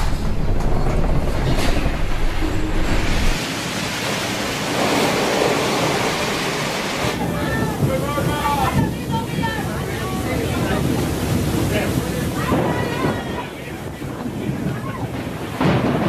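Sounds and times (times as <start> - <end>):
crashing waves: 0.0 - 16.0
low rumble: 0.0 - 16.0
rushing wind and water: 0.0 - 16.0
wind: 0.0 - 16.0
voices: 7.1 - 15.4.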